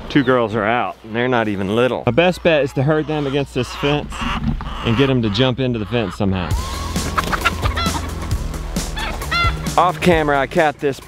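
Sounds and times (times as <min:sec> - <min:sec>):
hen squawking: 0:01.4 - 0:09.9.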